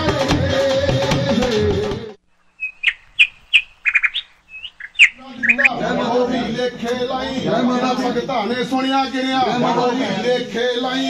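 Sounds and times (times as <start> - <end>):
bird chirping: 2.3 - 5.8, 8.6 - 9.1.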